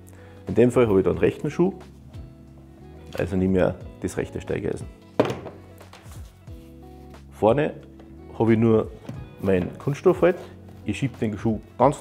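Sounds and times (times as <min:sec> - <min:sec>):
quiet background music: 0:00.0 - 0:12.0
boot thunk on wooden table: 0:05.2 - 0:05.6, 0:09.0 - 0:09.8.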